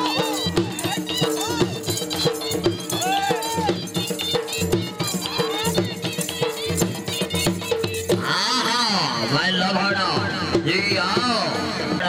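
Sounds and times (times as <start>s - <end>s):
ringing metallic percussion: 0.0s - 9.3s
dhol drums beating: 0.0s - 12.0s.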